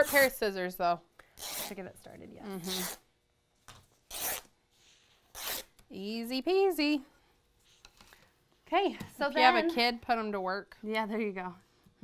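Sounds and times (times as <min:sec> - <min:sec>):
fabric ripping: 0:01.4 - 0:01.8, 0:02.6 - 0:03.0, 0:04.1 - 0:04.5, 0:05.3 - 0:05.8.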